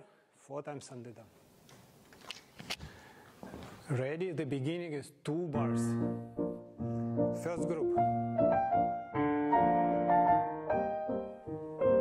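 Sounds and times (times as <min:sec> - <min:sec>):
footsteps on floor: 0:02.7 - 0:03.8.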